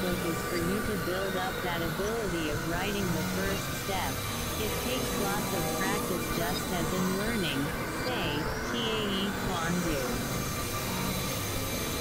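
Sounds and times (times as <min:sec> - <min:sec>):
low held tones: 0:00.0 - 0:12.0
synthesizer noise drone: 0:00.0 - 0:12.0.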